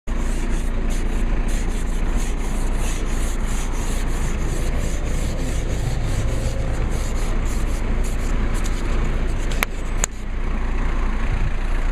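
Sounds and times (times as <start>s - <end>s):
ice scraper scraping windshield: 0.1s - 10.3s
steady low rumble: 0.1s - 11.9s.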